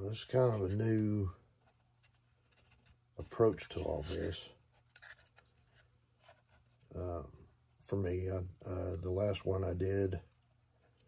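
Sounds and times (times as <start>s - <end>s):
soft scrapes against wood: 0.0s - 7.9s.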